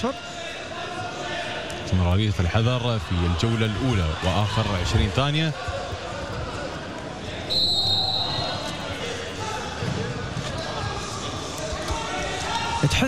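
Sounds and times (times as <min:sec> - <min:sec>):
crowd calling and shouting: 0:00.0 - 0:13.0.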